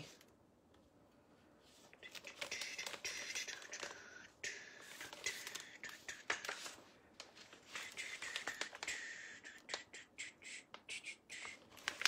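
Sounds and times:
tape and plastic sheet crackling: 4.8 - 9.8, 11.4 - 12.0.

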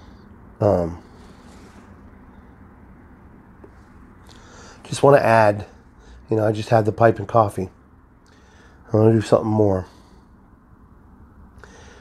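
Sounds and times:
soft breath hiss: 0.0 - 12.0
steady low hum: 0.0 - 12.0.

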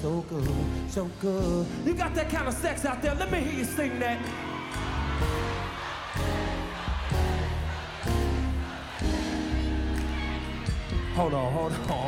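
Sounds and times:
audience singing along: 4.2 - 11.1.

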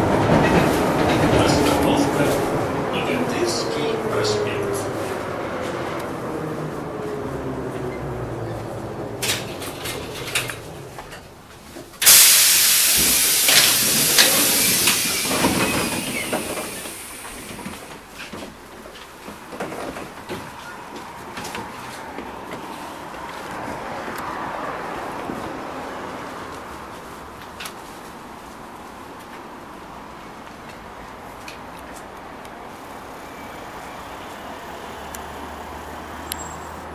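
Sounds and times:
tram whine slowing: 0.0 - 18.2, 32.6 - 36.9
cabin and street noise: 0.0 - 36.9
loud hiss of air: 12.0 - 17.7.

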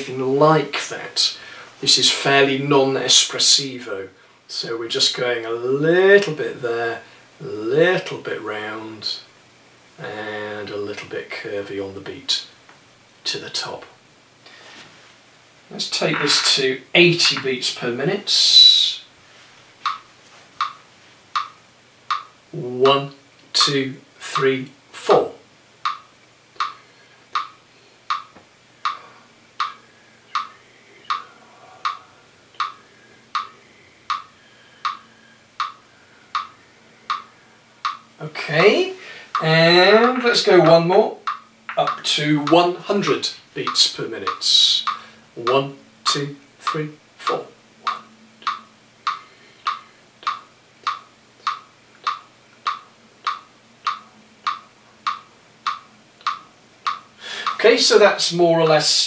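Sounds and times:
metronome clicking: 19.8 - 24.6, 25.8 - 29.0, 29.6 - 57.7.

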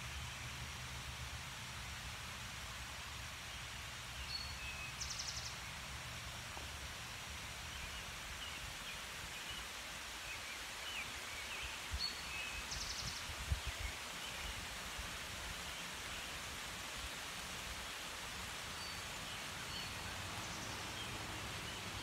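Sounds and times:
soft steady forest hiss: 0.0 - 22.0.

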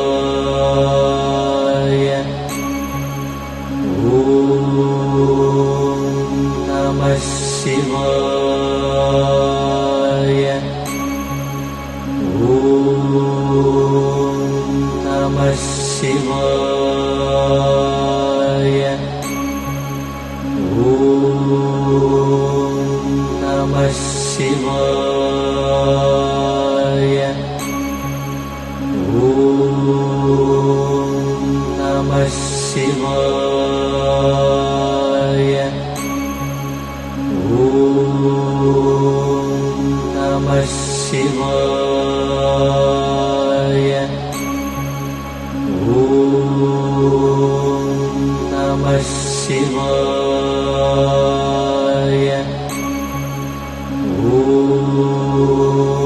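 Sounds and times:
chanted mantra: 0.0 - 3.1, 3.8 - 11.4, 12.2 - 56.0
high shimmer: 0.0 - 56.0
steady low drone: 0.0 - 56.0.

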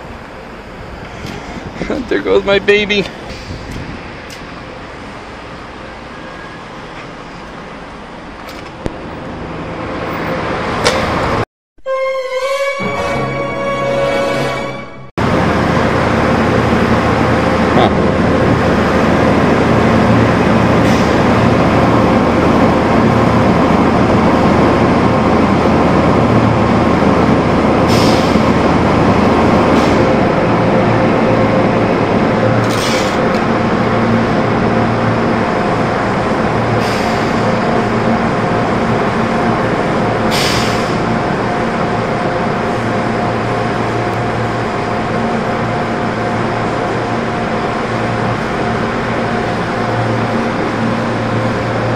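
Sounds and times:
machinery hum: 12.2 - 51.9.

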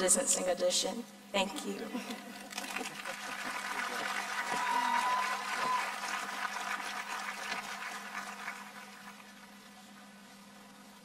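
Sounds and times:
crowd applause: 2.5 - 9.5.

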